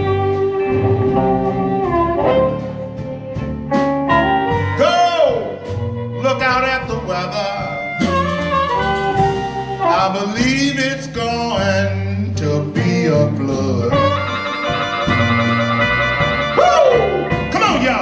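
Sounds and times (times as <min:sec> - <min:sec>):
amplified harmonica bending notes: 0:00.0 - 0:11.5, 0:13.1 - 0:18.0
electric blues band playing: 0:00.0 - 0:18.0.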